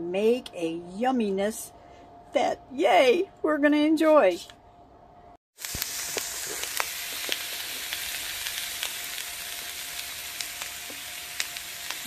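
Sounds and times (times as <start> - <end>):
vegetables sizzling in oil: 5.6 - 12.0.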